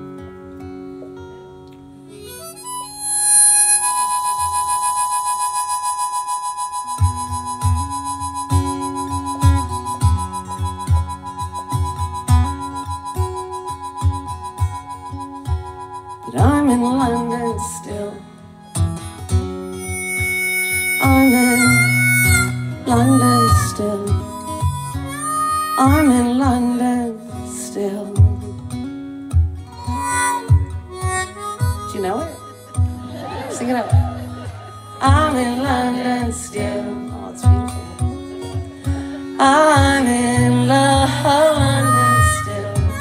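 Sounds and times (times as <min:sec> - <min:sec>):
acoustic guitars: 0:00.0 - 0:43.0
harmonica playing: 0:02.1 - 0:27.0, 0:29.6 - 0:43.0.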